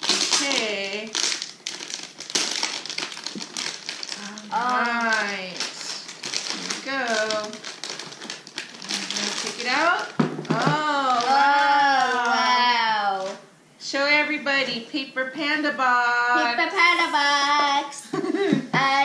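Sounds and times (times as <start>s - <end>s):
foil wrapping crinkling: 0.0s - 13.4s
person's voice: 8.9s - 13.4s, 14.0s - 19.0s.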